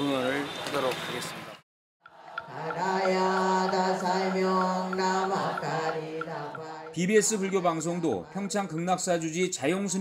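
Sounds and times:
monks chanting in unison: 2.2s - 8.6s.

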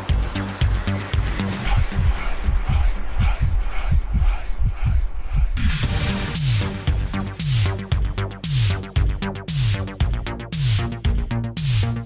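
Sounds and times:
dance music with deep kick drum: 0.0s - 12.0s.

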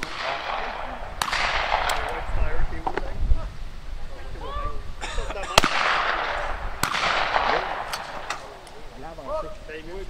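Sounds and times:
shotgun shot echo: 0.0s - 2.3s, 5.6s - 8.6s.

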